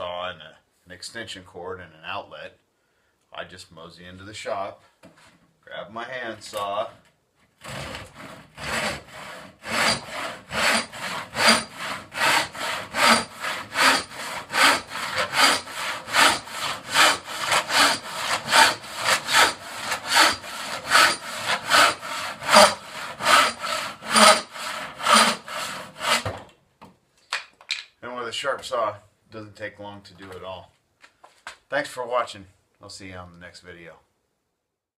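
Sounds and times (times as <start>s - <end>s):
hand saw cutting wood: 7.6s - 26.4s.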